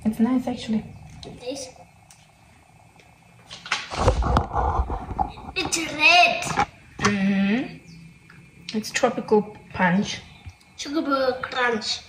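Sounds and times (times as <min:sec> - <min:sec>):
child speaking: 0:01.2 - 0:01.8, 0:05.6 - 0:06.7, 0:10.8 - 0:12.0.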